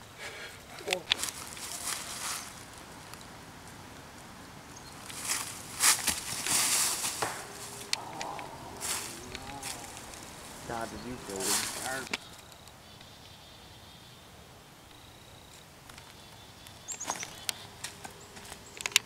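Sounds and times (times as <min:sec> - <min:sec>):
footsteps crunching dry leaves: 0:01.0 - 0:03.1, 0:04.9 - 0:12.4, 0:17.0 - 0:18.6.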